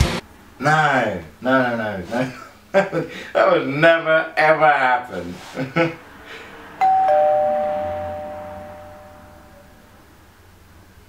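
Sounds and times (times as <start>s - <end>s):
two-note doorbell chime: 6.8s - 9.8s.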